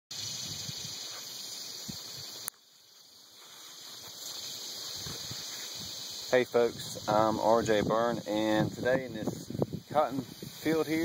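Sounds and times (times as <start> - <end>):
high-pitched insect drone: 0.1 - 11.0
wind rumbling on microphone: 0.2 - 1.1, 4.9 - 11.0.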